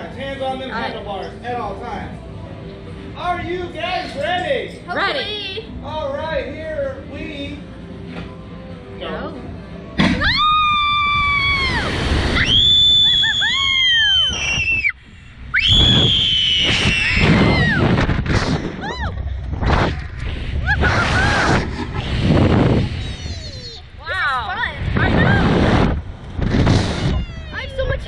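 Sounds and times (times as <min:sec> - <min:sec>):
people screaming: 0:10.1 - 0:14.9, 0:15.6 - 0:18.0, 0:20.6 - 0:21.7
wind rushing on microphone: 0:15.6 - 0:23.8, 0:24.4 - 0:28.0.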